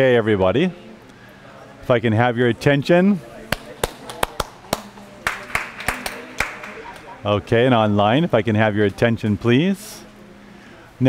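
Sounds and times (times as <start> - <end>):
murmur of people talking: 0.0 - 11.0
sharp hand claps: 3.5 - 7.2.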